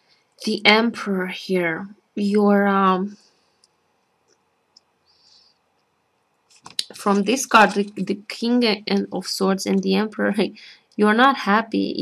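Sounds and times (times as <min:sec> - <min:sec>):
woman saying um: 0:00.4 - 0:03.2, 0:06.8 - 0:12.0.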